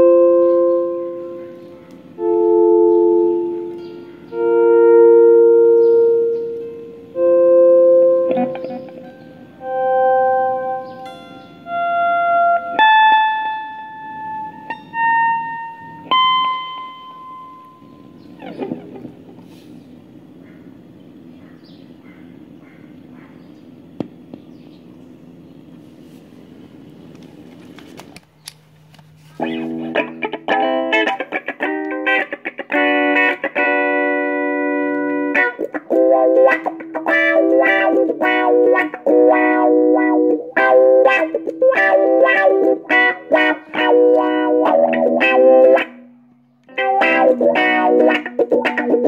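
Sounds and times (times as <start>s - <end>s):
held instrument chord: 0.0s - 18.4s, 29.4s - 49.0s
electric guitar single notes: 0.0s - 19.4s, 29.4s - 49.0s
low steady hum: 0.0s - 31.0s, 42.2s - 48.8s.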